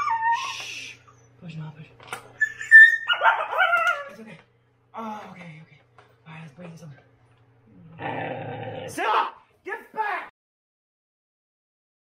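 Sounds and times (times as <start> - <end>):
dog straining and crying: 0.0 - 0.6, 2.4 - 4.3.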